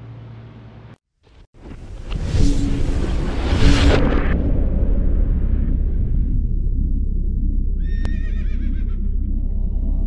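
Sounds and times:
low rumbling music: 2.0s - 10.0s.

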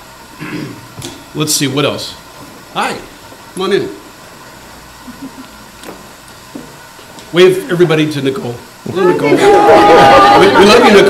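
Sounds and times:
steady hiss: 0.0s - 11.0s.

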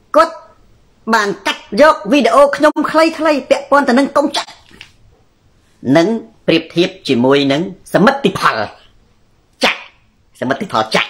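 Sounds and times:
man talking over video call: 0.1s - 4.9s, 5.8s - 11.0s.

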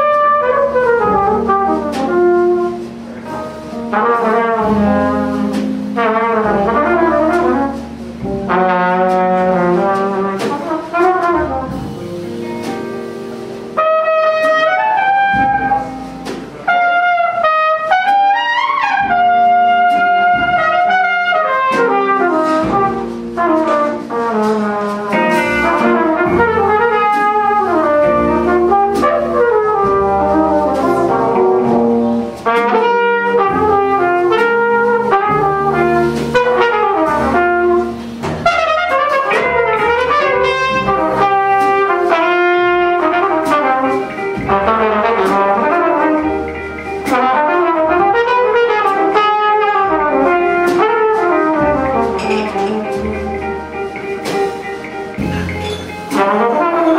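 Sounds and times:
drum kit with cymbals: 0.0s - 56.9s
trumpet melody: 0.0s - 56.9s
upright bass: 0.0s - 56.9s.

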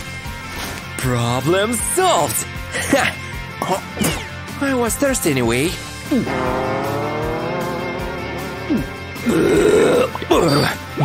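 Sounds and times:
background music: 0.0s - 11.0s
loud rough burp: 6.0s - 11.0s.

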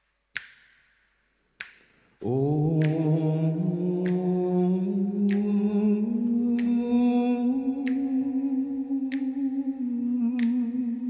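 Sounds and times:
hummed vocal note: 2.2s - 11.0s.

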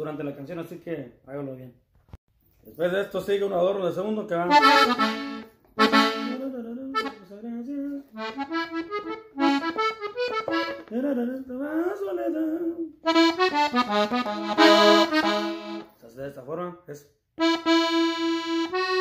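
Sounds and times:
button accordion melody: 4.4s - 11.1s, 13.0s - 16.0s, 17.4s - 19.0s.

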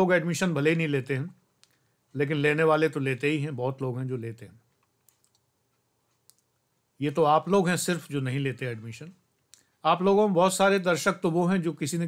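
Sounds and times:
faint clicks: 4.7s - 6.6s.

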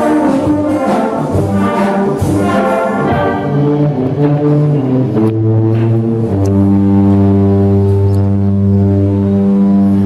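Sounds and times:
brass band holding low chord: 0.0s - 10.0s.

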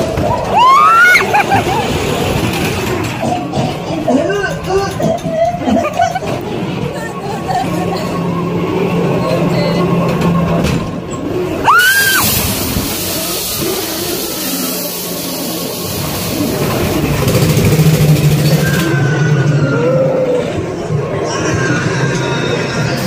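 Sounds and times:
rising shriek: 11.4s - 17.4s
hiss: 11.7s - 18.9s.

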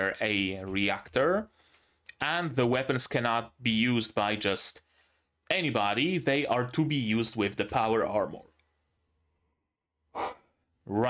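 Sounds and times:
man speaking: 2.2s - 4.8s, 5.5s - 8.5s.

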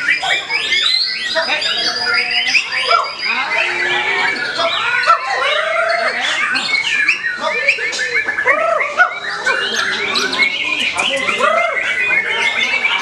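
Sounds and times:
bird singing whistles and chatter: 0.0s - 13.0s.

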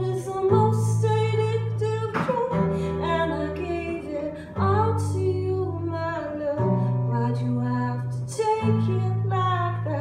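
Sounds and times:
acoustic guitar chords: 0.0s - 10.0s
woman singing: 0.0s - 10.0s.

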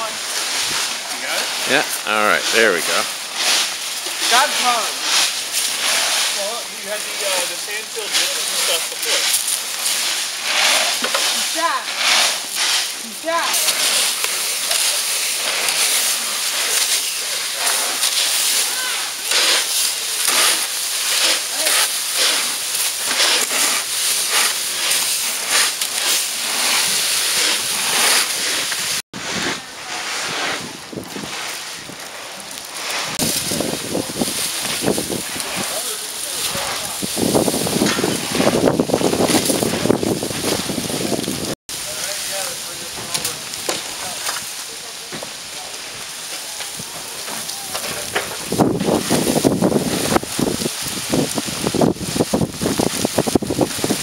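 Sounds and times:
rakes scraping through dry leaves: 0.0s - 54.0s
wind on microphone: 28.7s - 32.1s, 33.0s - 35.8s, 36.4s - 41.6s, 48.1s - 54.0s.

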